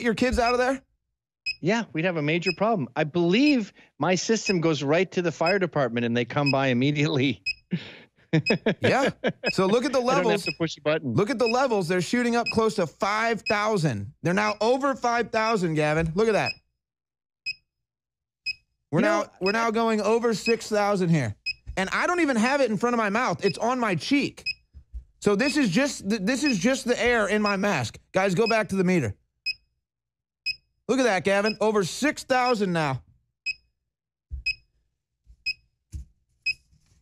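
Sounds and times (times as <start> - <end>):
short high alarm beeps: 9.5 - 10.6.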